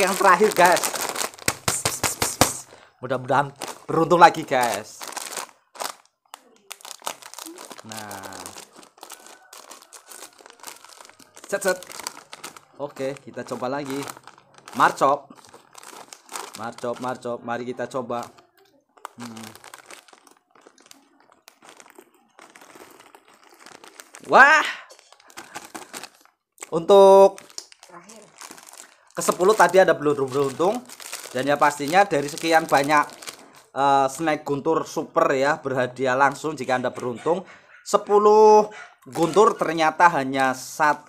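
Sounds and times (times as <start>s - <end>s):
plastic wrapper crinkling: 0.0s - 17.3s, 17.9s - 34.3s, 39.1s - 41.0s
plastic snack packet crackling: 0.0s - 34.3s, 39.1s - 41.0s.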